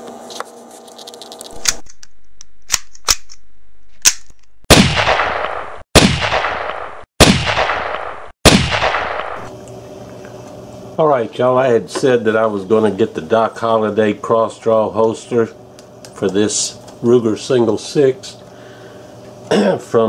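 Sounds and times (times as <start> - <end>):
gunshots with echo: 4.7 - 9.5.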